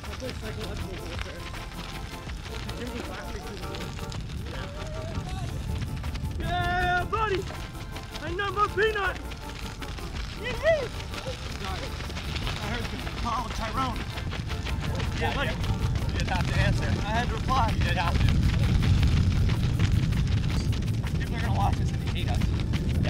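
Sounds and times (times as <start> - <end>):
background music: 0.0 - 18.5
wind rumble on microphone: 0.0 - 23.0.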